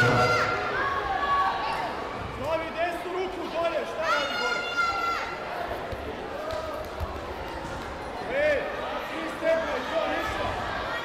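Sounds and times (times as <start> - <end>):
sports hall noise: 0.0 - 11.0.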